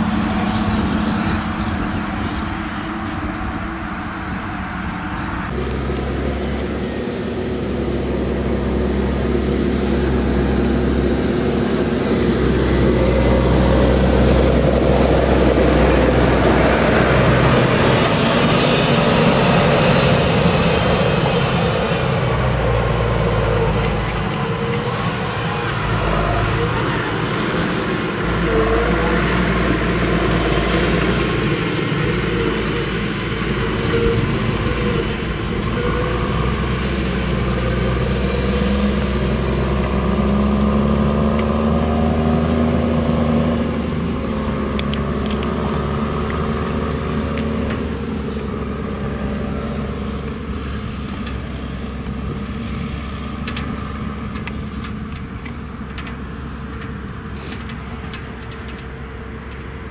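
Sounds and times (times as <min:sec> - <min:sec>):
tractor diesel engine running: 0:00.0 - 0:59.9.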